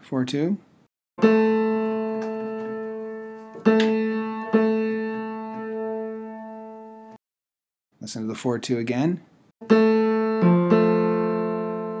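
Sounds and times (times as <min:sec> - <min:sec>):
piano string struck and ringing: 0:01.2 - 0:07.0.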